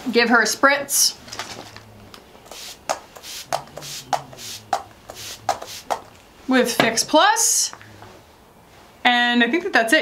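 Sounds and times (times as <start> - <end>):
spray bottle hiss: 2.4 - 6.1.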